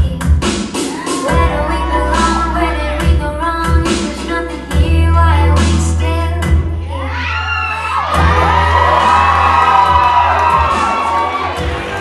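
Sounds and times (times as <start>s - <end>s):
dubstep pop music with heavy bass: 0.0s - 7.2s, 8.0s - 12.0s
audience whooping and cheering: 0.8s - 1.7s, 7.0s - 12.0s.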